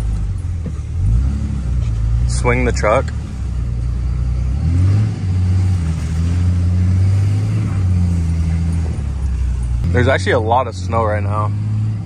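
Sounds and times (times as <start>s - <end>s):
pickup truck engine: 0.0s - 12.0s
road noise inside cab: 0.0s - 12.0s.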